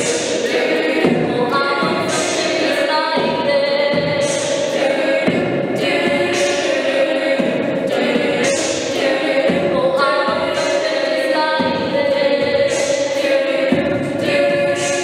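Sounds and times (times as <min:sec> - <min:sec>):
vocal percussion hissing: 0:00.0 - 0:15.0
women singing a cappella: 0:00.0 - 0:15.0.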